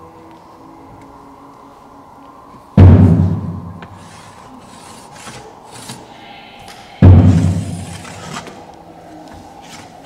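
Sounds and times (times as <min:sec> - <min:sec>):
deep drum boom: 0:02.8 - 0:03.7, 0:07.0 - 0:08.0.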